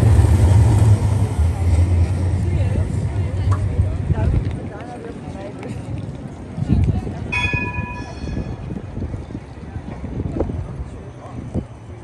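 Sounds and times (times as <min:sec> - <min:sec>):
low street rumble: 0:00.0 - 0:12.0
wind on microphone: 0:05.9 - 0:11.8
tram warning bell ding: 0:07.3 - 0:08.7.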